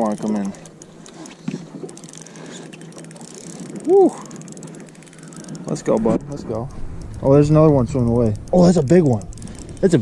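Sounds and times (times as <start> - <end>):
fishing reel ratcheting: 0.0 - 10.0
person shouting: 3.8 - 4.2.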